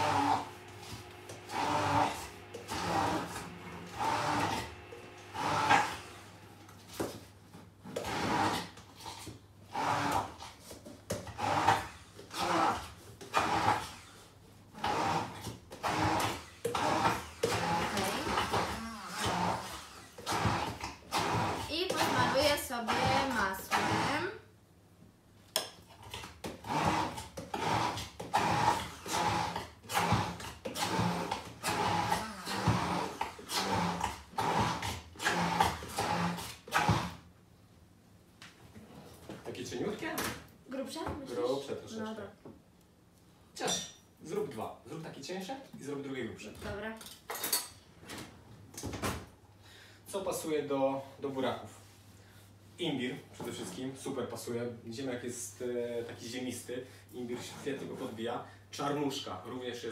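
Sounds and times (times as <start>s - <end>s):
immersion blender pulsing: 0.0s - 7.2s, 7.8s - 10.5s, 11.1s - 14.1s, 14.7s - 24.4s, 26.1s - 37.3s.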